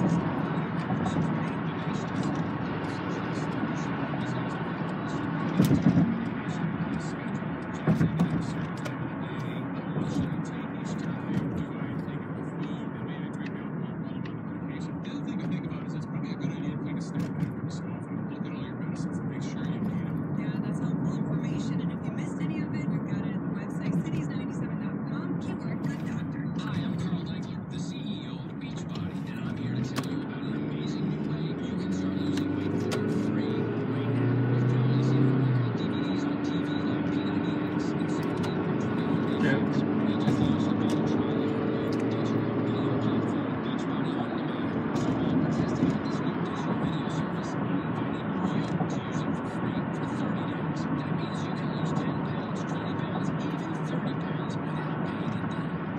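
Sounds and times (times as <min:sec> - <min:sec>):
car road and engine noise: 0:00.0 - 0:55.9
indistinct voices: 0:00.0 - 0:55.9.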